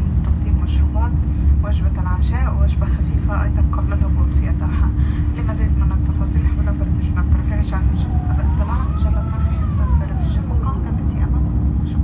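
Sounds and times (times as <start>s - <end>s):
airplane cabin rumble: 0.0s - 12.0s
steady hum: 0.0s - 12.0s
voices: 0.2s - 12.0s.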